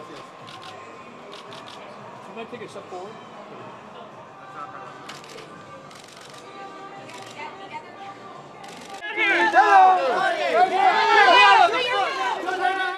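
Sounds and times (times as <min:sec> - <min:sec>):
murmur of voices: 0:00.0 - 0:12.9
camera shutters clicking: 0:05.0 - 0:06.4, 0:08.6 - 0:09.0.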